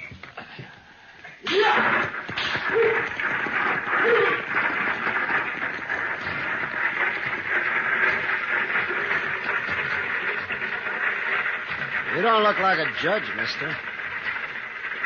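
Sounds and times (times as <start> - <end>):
horse hooves clattering: 0.0 - 15.0
coach rattling: 1.5 - 15.0.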